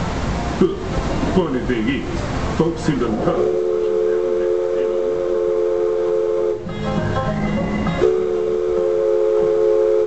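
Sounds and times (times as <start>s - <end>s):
steam whistle chord: 3.3s - 10.0s.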